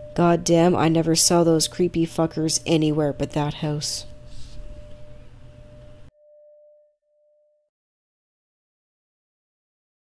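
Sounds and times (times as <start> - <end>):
high pure ringing tone: 0.0 - 7.7.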